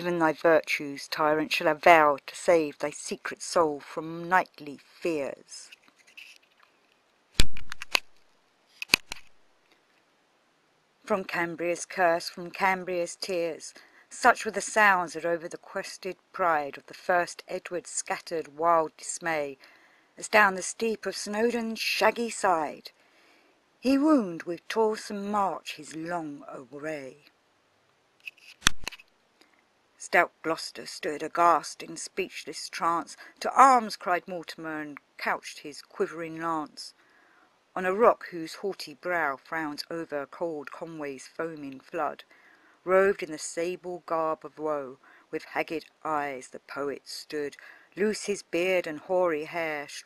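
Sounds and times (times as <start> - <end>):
faint rustle: 4.8 - 10.2
quick clicks: 7.4 - 9.4, 28.2 - 29.2.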